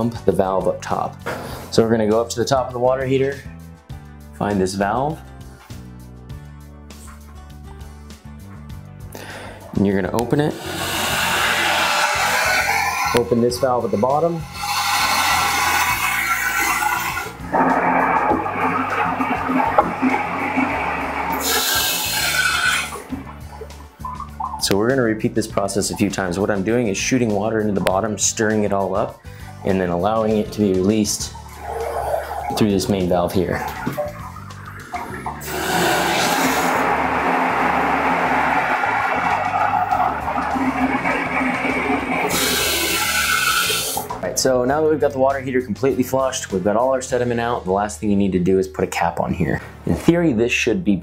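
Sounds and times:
background music: 0.0 - 51.0
water rushing through a tank: 9.8 - 44.3.

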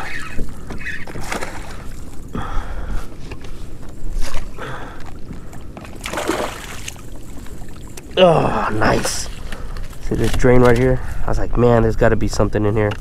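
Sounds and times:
fish splashing at water surface: 5.9 - 7.0.

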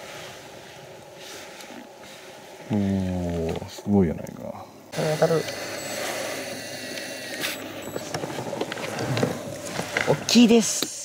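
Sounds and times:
rustle: 0.0 - 11.0
electric fishing reel whine: 5.0 - 9.4.

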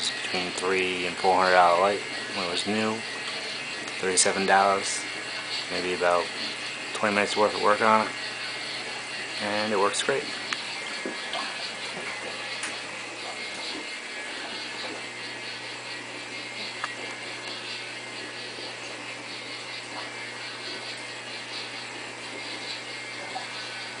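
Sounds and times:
disco light motor whirring: 0.0 - 24.0.

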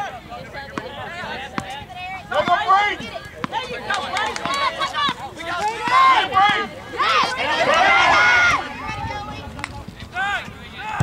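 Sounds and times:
people shouting: 4.6 - 8.9.

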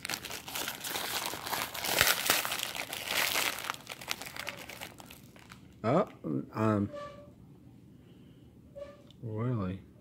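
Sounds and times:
foil wrapper crinkling and tearing: 0.0 - 5.8.

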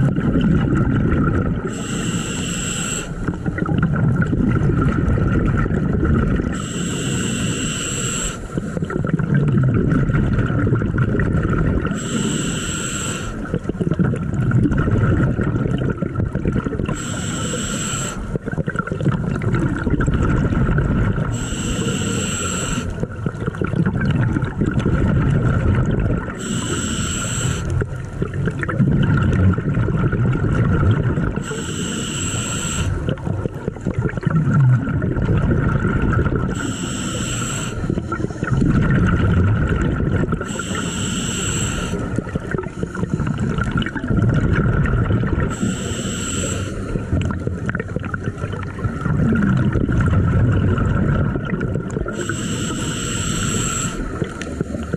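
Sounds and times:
exhaled air bubbling: 0.0 - 54.9
regulator hissing inhale: 1.7 - 3.4, 6.5 - 9.0, 11.9 - 13.6, 16.9 - 18.4, 21.3 - 23.1, 26.3 - 28.1, 31.4 - 33.2, 36.5 - 38.5, 40.4 - 43.6, 45.5 - 47.3, 52.1 - 54.9.

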